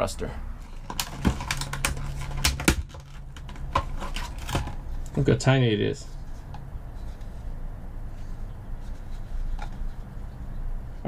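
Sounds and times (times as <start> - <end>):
plastic packaging crinkling: 0.7 - 5.2.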